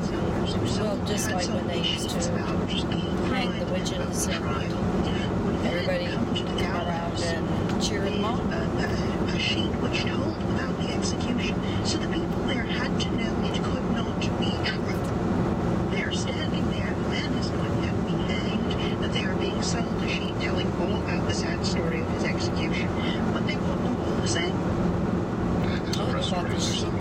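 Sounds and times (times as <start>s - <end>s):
talk from car audio: 0.0s - 15.2s, 15.8s - 24.7s, 25.6s - 27.0s
road and tyre noise in car: 0.0s - 27.0s.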